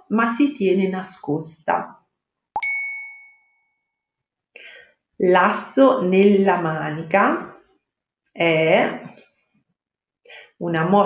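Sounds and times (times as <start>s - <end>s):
bright chime ding: 2.6s - 3.8s.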